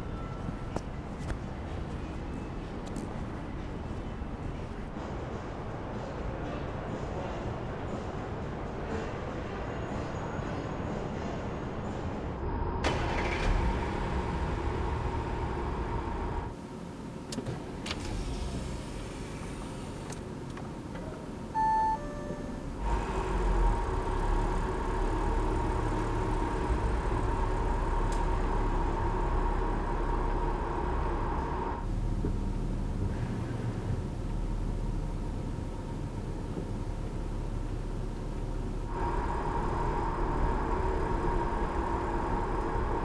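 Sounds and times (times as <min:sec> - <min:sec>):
car engine and tyres rumbling: 0:00.0 - 0:43.0
short electronic beep: 0:21.6 - 0:22.6.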